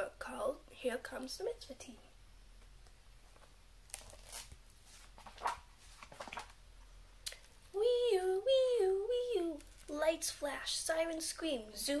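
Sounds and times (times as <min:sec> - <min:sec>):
pages rustling: 0:03.2 - 0:06.6.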